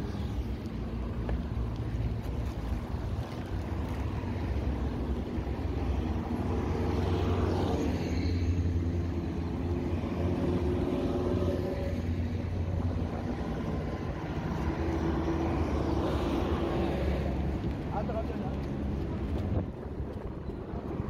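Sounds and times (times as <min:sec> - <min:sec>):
bus engine hum: 0:00.0 - 0:21.0
road traffic rumble: 0:00.0 - 0:21.0.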